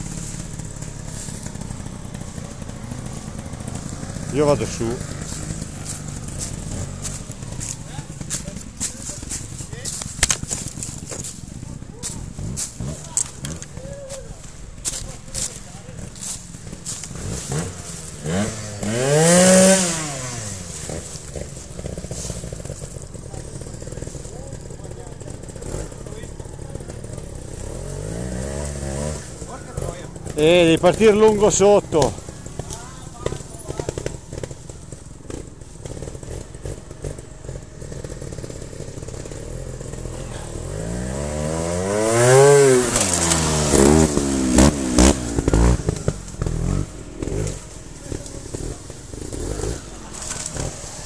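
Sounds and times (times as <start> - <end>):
motorcycle engines running: 0.0 - 51.0
motorcycle revving: 0.0 - 51.0
sharp crackles and knocks: 0.1 - 13.7, 14.4 - 19.0, 29.8 - 40.0.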